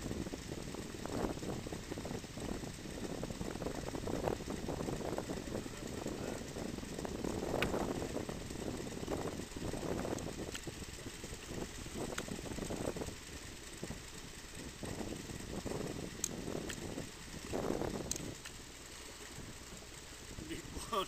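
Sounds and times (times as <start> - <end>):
boat engine rumble: 0.0 - 21.0.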